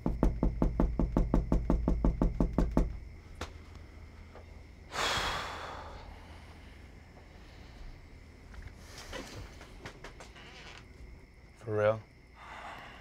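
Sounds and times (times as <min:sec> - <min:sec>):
fast sharp knocks: 0:00.0 - 0:03.2.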